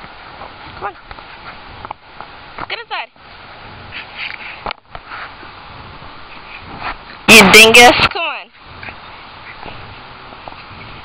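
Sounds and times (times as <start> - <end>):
dog rustling in grass: 3.2 - 11.0.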